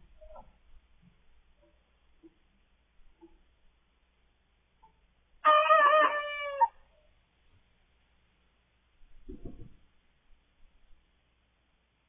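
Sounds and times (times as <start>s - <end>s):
cockerel crowing: 5.4s - 6.8s.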